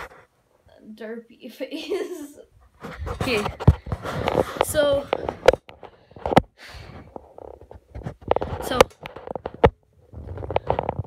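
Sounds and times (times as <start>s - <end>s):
phone microphone rubbing: 0.0s - 0.3s, 2.6s - 11.0s
boy speaking: 4.6s - 5.2s.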